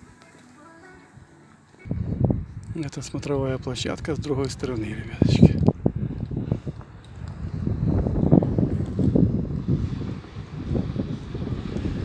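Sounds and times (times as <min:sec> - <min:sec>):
wind buffeting microphone: 0:01.8 - 0:12.0.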